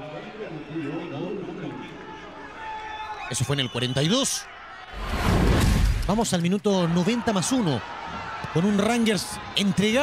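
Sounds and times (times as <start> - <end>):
stadium crowd ambience: 0.0 - 5.0, 6.2 - 10.0.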